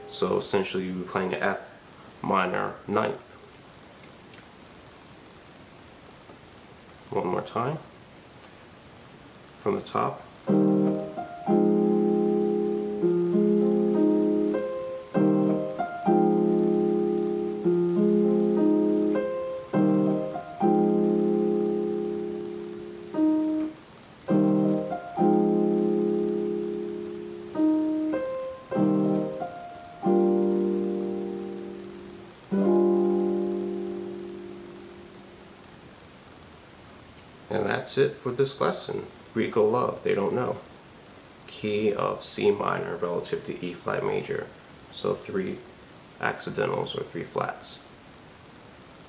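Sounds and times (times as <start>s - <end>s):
digital piano playing slow chords: 0.0s - 1.0s, 10.4s - 35.9s.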